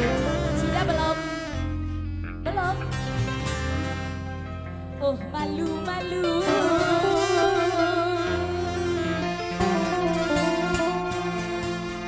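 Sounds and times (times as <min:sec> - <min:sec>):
ensemble playing live: 0:00.0 - 0:12.0.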